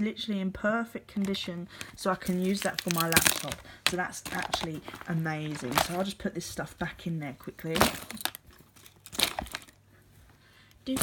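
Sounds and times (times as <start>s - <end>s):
rustling of pencil case packing: 1.2s - 6.3s.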